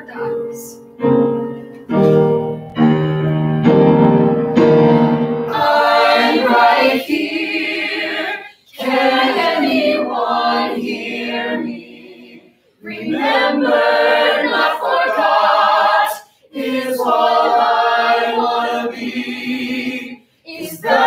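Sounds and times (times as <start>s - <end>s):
ensemble singing in harmony: 5.5s - 21.0s.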